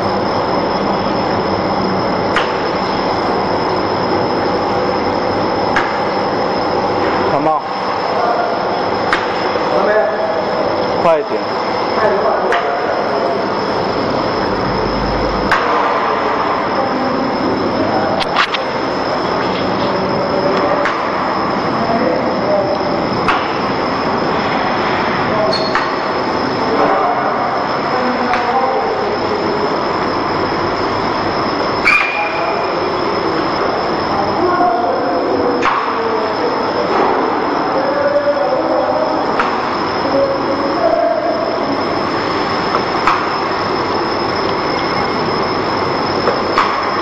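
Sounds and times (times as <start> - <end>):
laminating machine running: 0.0 - 47.0
thin high whine: 0.0 - 47.0.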